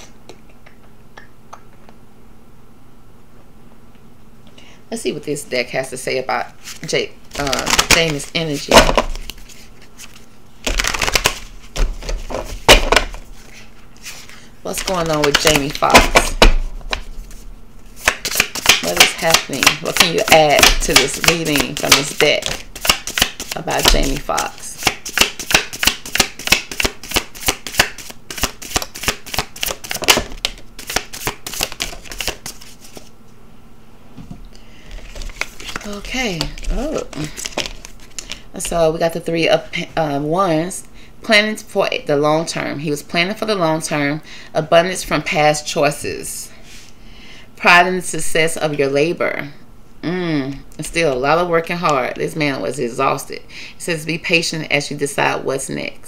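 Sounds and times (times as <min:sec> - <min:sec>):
cards being shuffled: 0:06.6 - 0:33.1, 0:34.8 - 0:38.8.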